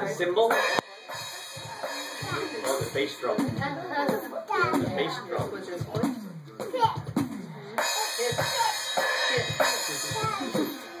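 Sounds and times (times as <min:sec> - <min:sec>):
electronic tom and bass drum hits: 0:00.7 - 0:10.8
cymbal crash ringing: 0:07.8 - 0:11.0.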